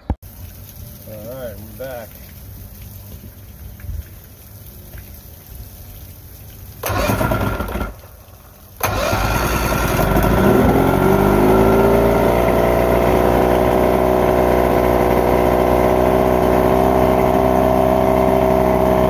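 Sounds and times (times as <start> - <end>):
outboard engine cranking and idling: 6.8 - 8.1, 8.8 - 19.0.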